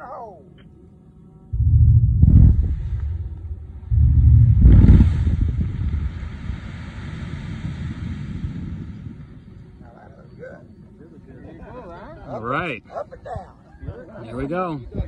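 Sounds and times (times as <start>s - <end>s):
long rumble: 1.5s - 9.7s
blasting charges booming: 1.6s - 9.2s.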